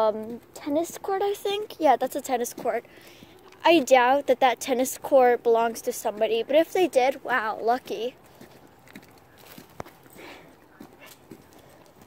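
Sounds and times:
light steps on road: 0:00.0 - 0:04.3, 0:07.7 - 0:12.0
dog on a lead: 0:05.6 - 0:12.0.

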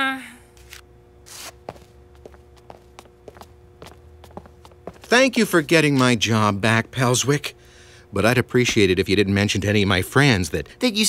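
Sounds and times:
cartoon footsteps: 0:01.3 - 0:07.0.

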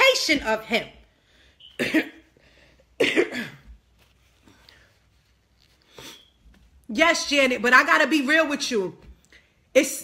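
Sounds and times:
woman coughing: 0:01.7 - 0:02.4, 0:03.0 - 0:03.8.

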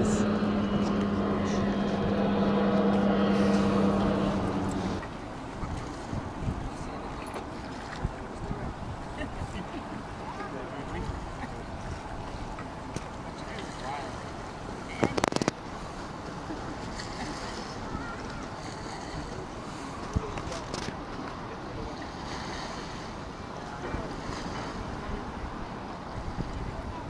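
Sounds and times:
faint distant voices: 0:00.0 - 0:05.1
wind buffeting microphone: 0:00.0 - 0:10.2, 0:23.8 - 0:27.0.

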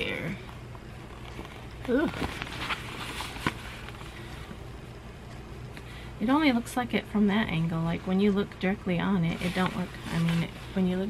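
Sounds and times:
low steady hum: 0:00.0 - 0:11.0
fabric rustling and scratching: 0:00.9 - 0:04.4, 0:09.2 - 0:11.0.

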